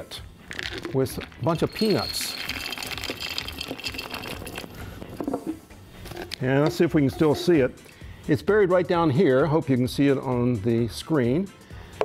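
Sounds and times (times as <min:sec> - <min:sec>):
peanuts pouring into glass jar: 0:00.5 - 0:04.8.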